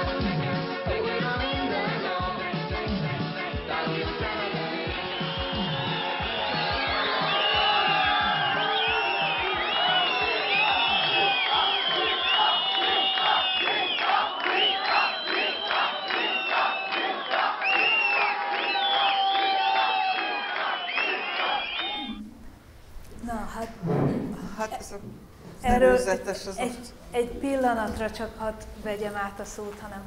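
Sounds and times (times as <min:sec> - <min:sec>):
music with drum beat: 0:00.0 - 0:10.0
crowd shouting and cheering: 0:03.4 - 0:22.2.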